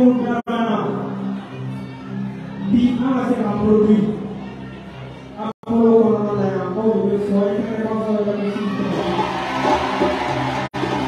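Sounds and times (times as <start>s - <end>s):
live band music: 8.7s - 11.0s.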